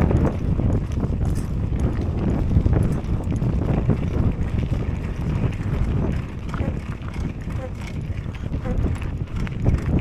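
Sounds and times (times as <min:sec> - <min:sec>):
bike rolling over rough trail: 0:00.0 - 0:10.0
wind buffeting microphone: 0:00.0 - 0:10.0.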